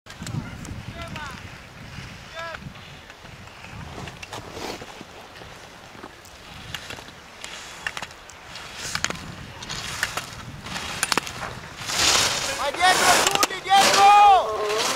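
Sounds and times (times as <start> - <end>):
skis scraping over snow: 0.1 - 14.9
spectators calling out: 12.5 - 14.9.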